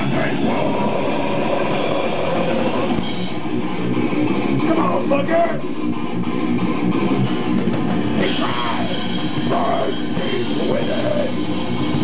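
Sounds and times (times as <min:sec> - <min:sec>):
bass guitar: 0:00.0 - 0:12.0
distorted electric guitar: 0:00.0 - 0:12.0
drums: 0:00.0 - 0:12.0.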